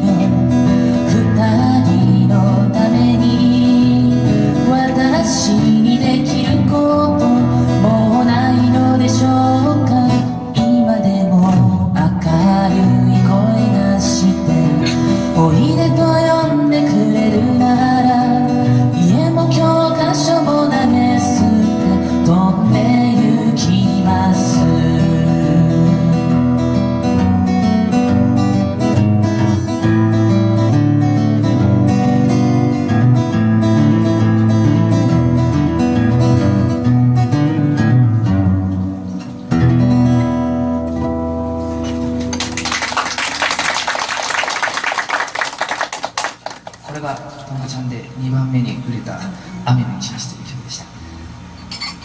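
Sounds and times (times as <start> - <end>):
acoustic guitar playing folk song: 0.0 - 43.9
audience applause: 42.2 - 47.1.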